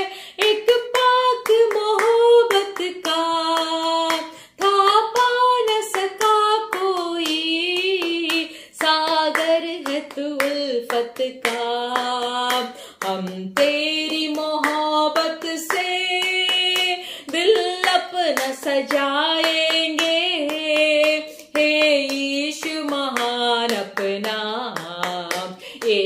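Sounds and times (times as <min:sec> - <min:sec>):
woman singing devotional song: 0:00.0 - 0:26.0
hands clapping: 0:00.4 - 0:26.0.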